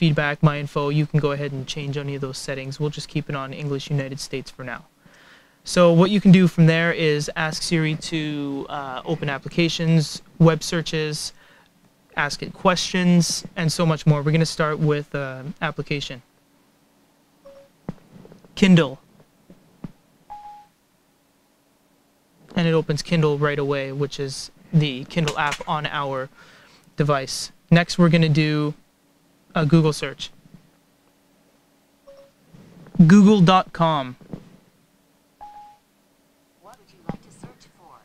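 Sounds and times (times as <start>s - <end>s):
person speaking: 5.7s - 11.3s, 22.5s - 26.3s
electronic chime beep: 20.3s - 20.7s, 32.1s - 32.4s, 35.4s - 35.8s.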